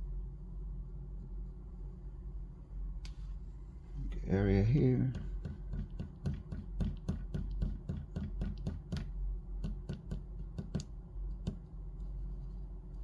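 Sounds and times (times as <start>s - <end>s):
eraser tapping on paper: 5.0s - 11.7s.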